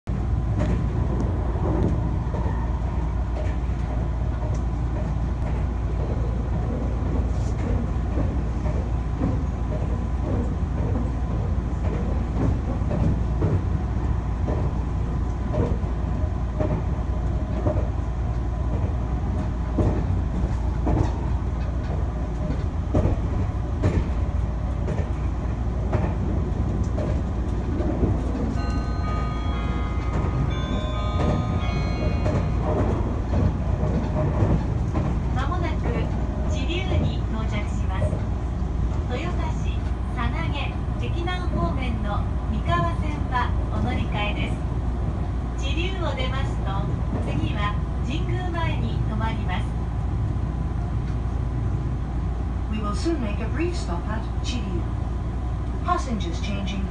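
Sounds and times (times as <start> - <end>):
train wheels rumbling on rails: 0.1 - 56.9
recorded station announcement: 35.4 - 38.2, 39.1 - 44.6, 45.6 - 49.7, 52.7 - 54.9, 55.8 - 56.9.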